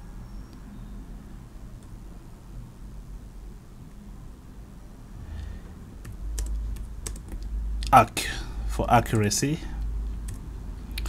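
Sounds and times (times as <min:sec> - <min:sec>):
computer keyboard key clicks: 0:06.1 - 0:07.5.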